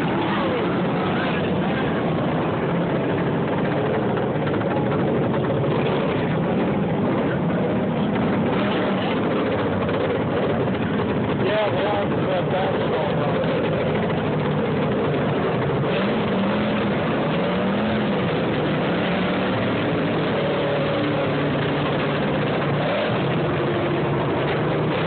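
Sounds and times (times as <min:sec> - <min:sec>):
racing tractor engines: 0:00.0 - 0:25.0.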